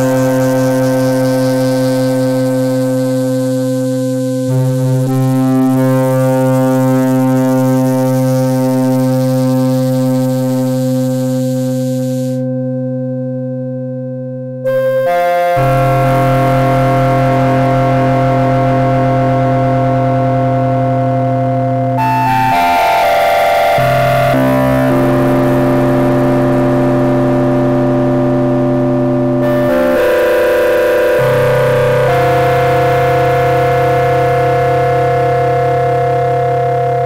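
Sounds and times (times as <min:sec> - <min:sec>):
synthesizer held chords: 0:00.0 - 0:12.7, 0:14.6 - 0:37.0.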